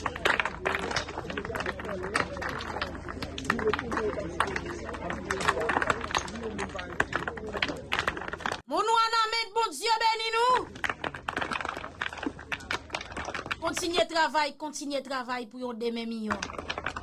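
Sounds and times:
people talking over one another: 0.0s - 15.3s
sharp clicks and knocks: 10.7s - 14.1s, 16.3s - 17.0s.

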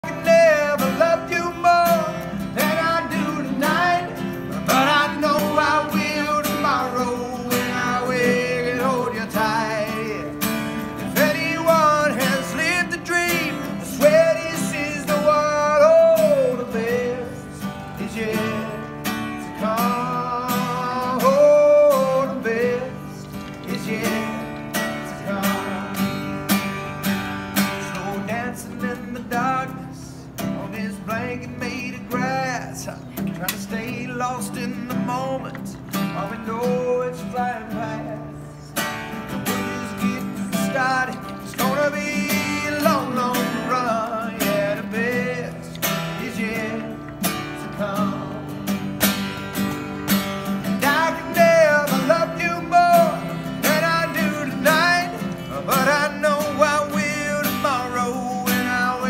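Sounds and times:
strummed acoustic guitar: 0.0s - 59.0s.

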